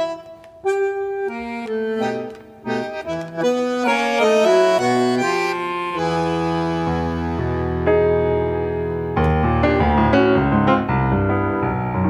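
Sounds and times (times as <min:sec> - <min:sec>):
bandoneon tango melody: 0:00.0 - 0:12.0.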